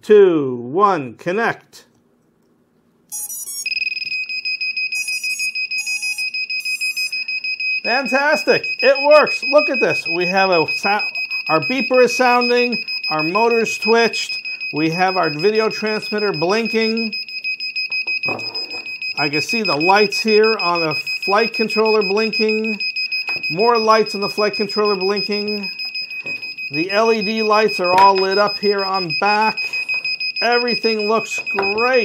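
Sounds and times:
rising electronic beeps: 3.1s - 4.1s
high-pitched buzzer beeping: 3.1s - 32.0s.

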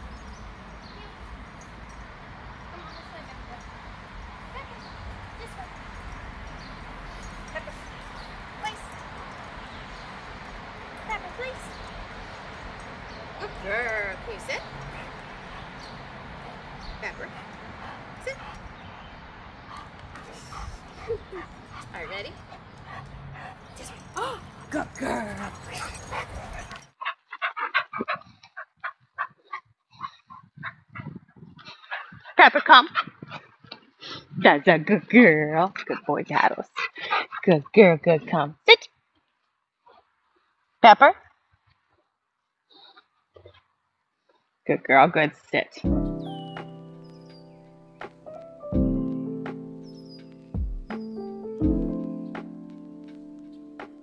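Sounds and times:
outdoor background noise: 0.0s - 54.0s.

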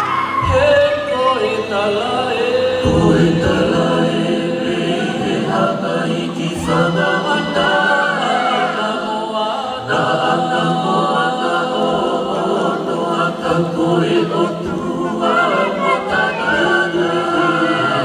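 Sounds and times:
choir singing in harmony: 0.0s - 18.0s.

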